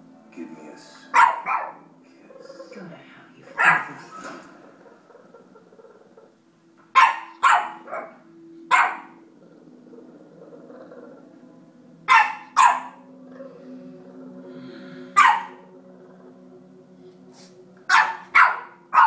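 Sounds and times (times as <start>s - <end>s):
puppy barking: 1.1s - 1.8s, 3.6s - 4.0s, 7.0s - 9.2s, 12.1s - 13.0s, 15.2s - 15.6s, 17.9s - 19.0s.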